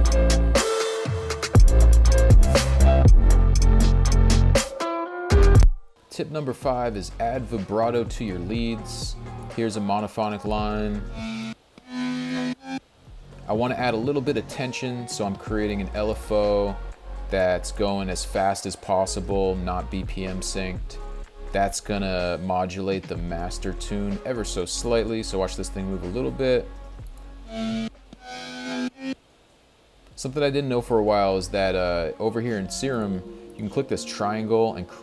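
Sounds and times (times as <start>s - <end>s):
synth lead notes: 10.4s - 18.4s, 23.2s - 29.2s
synth lead with vibrato: 10.5s - 12.8s, 27.3s - 29.2s.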